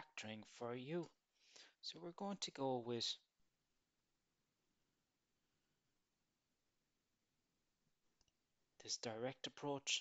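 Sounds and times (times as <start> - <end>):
man speaking: 0.0 - 1.2, 1.8 - 3.3, 8.8 - 10.0.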